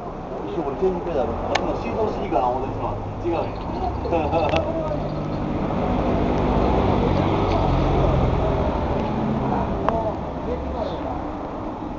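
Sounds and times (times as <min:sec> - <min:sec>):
voices talking: 0:00.4 - 0:11.6.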